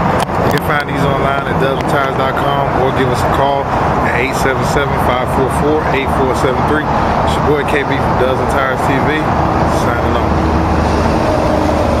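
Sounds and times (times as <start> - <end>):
motor vehicle rumble: 0.0 - 12.0.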